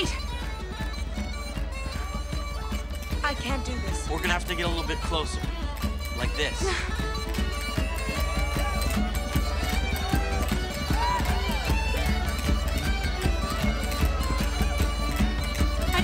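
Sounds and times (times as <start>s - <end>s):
folk band dance tune with pipes: 0.0s - 16.0s.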